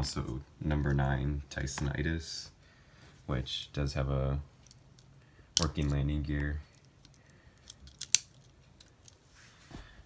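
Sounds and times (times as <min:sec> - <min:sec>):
faint handling noise: 0:04.5 - 0:10.0.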